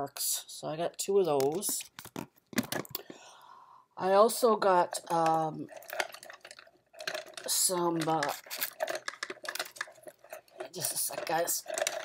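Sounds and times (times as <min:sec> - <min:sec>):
small objects clicking and tapping: 0:01.3 - 0:03.2, 0:05.0 - 0:12.0.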